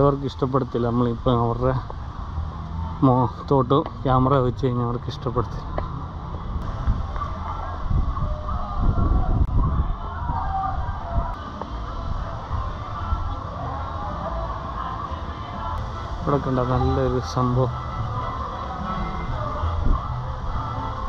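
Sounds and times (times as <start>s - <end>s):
faint music: 0.0s - 21.0s
low rumbling noise: 0.0s - 21.0s.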